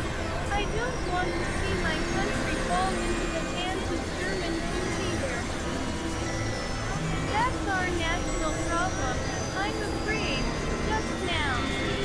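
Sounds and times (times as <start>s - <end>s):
noisy electronic drone: 0.0s - 12.0s.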